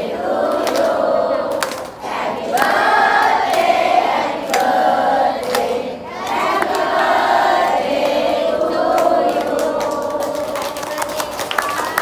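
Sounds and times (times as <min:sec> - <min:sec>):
choir singing: 0:00.0 - 0:11.1
hand claps: 0:01.5 - 0:02.0, 0:02.6 - 0:03.8, 0:04.4 - 0:04.8, 0:05.4 - 0:06.9, 0:07.7 - 0:12.0.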